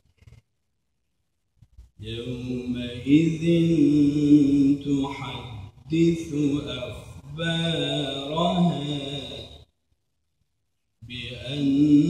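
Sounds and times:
man chanting recitation: 0:02.0 - 0:09.6, 0:11.0 - 0:12.0.

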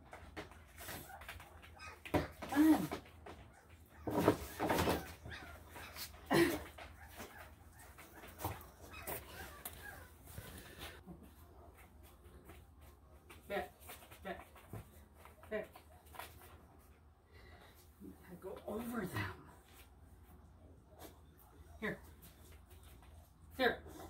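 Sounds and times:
person talking softly to a dog: 0:13.4 - 0:14.6, 0:15.4 - 0:15.8, 0:18.0 - 0:19.7, 0:21.6 - 0:22.2, 0:23.5 - 0:24.0.

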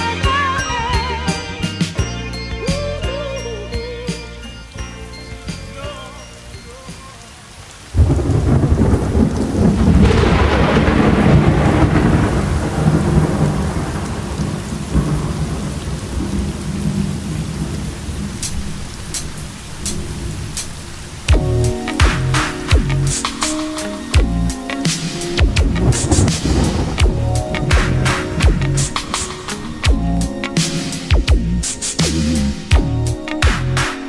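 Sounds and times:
song: 0:00.0 - 0:09.3, 0:21.3 - 0:34.0
heavy rain: 0:00.0 - 0:34.0
thunderclap rolling into rumble: 0:08.0 - 0:23.5, 0:25.3 - 0:32.7.

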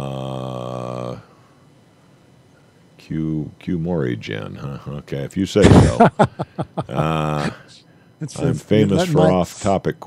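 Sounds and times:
man saying uhh: 0:00.0 - 0:01.3, 0:08.5 - 0:09.4.

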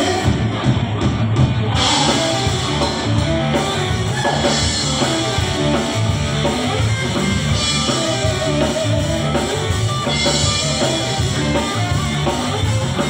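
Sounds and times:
drum kit: 0:00.0 - 0:13.0
electric guitar: 0:00.0 - 0:13.0.

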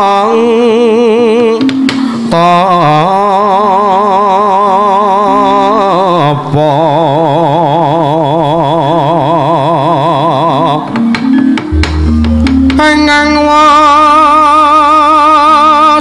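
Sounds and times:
person singing with vibrato: 0:00.0 - 0:16.0
gamelan low notes: 0:10.9 - 0:14.6.

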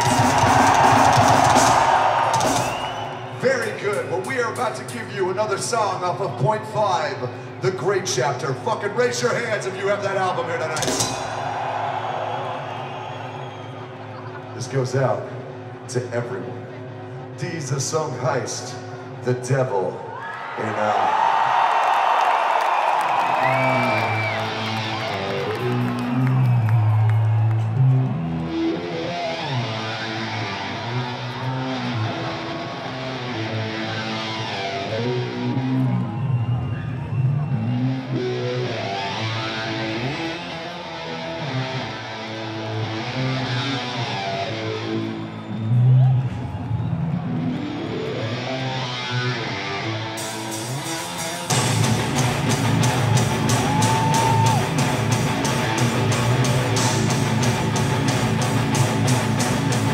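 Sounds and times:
heavy metal band playing: 0:00.0 - 0:02.9, 0:10.0 - 0:11.6, 0:28.4 - 0:36.2, 0:37.6 - 0:45.1, 0:47.1 - 0:59.9
crowd cheering: 0:00.0 - 0:04.2, 0:09.8 - 0:14.6, 0:20.1 - 0:59.9.

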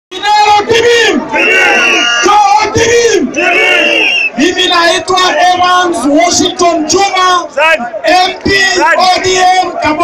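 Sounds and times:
crowd noise: 0:00.1 - 0:10.0
man shouting through loudspeakers: 0:00.1 - 0:10.0.

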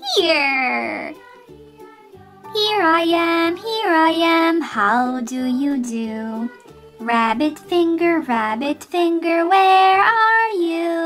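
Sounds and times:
bouncy children's song music: 0:00.0 - 0:11.0.

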